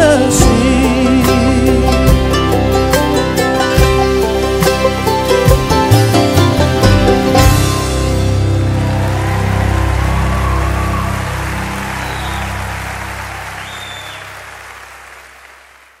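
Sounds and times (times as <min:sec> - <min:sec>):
bluegrass band chord ringing: 0:00.2 - 0:14.1
audience applause: 0:03.6 - 0:16.0.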